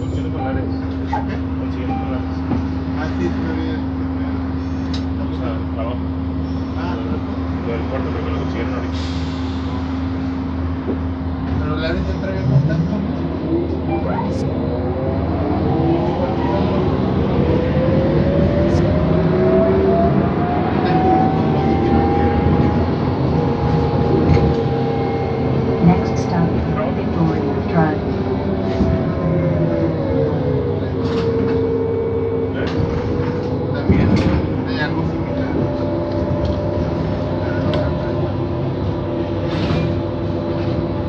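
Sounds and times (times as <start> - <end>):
bus drive whine rising: 0.0 - 41.0
bus interior hum: 0.0 - 41.0.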